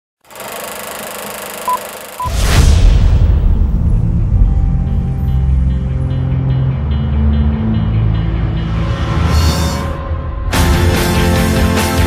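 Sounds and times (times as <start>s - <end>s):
film projector rattling: 0.3s - 2.3s
short high beep: 1.6s - 2.4s.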